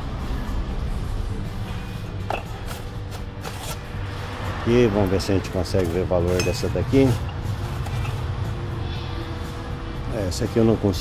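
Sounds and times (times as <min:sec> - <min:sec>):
faint background music: 0:00.0 - 0:11.0
steady low hum: 0:00.0 - 0:11.0.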